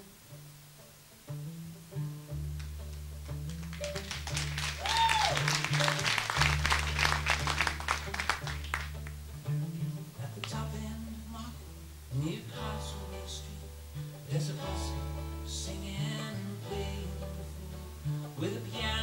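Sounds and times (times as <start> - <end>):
long held bass notes: 0.0 - 19.0
picked acoustic guitar: 0.0 - 19.0.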